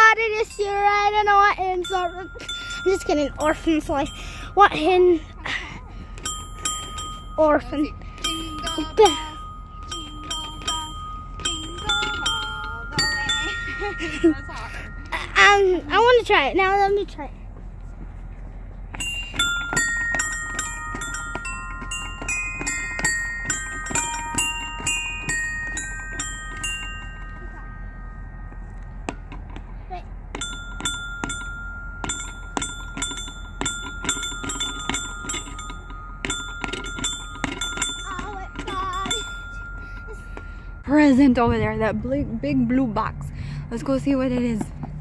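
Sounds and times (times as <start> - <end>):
electronic bell-like notes: 6.2 - 16.3, 19.0 - 29.4, 30.3 - 41.6.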